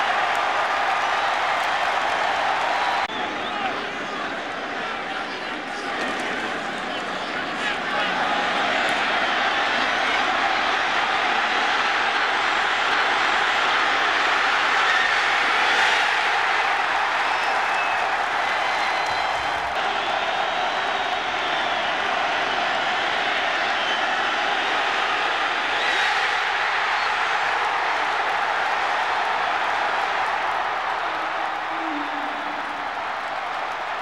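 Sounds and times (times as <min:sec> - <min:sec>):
stadium crowd cheering: 0:00.0 - 0:34.0.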